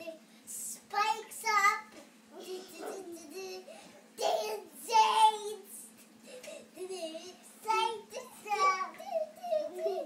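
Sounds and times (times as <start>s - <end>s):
young child singing: 0.0s - 5.9s, 6.8s - 10.0s.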